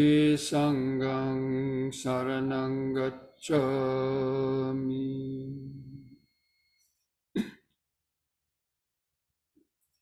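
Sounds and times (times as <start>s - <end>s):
throat clearing: 7.4s - 7.7s.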